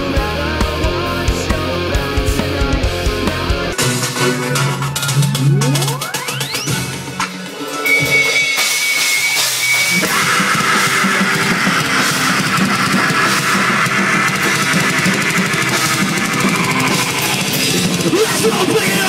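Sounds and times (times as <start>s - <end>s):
distorted electric guitar: 0.0s - 19.0s
drum kit: 0.0s - 19.0s
metal band playing: 0.0s - 19.0s
high held tone: 3.7s - 19.0s.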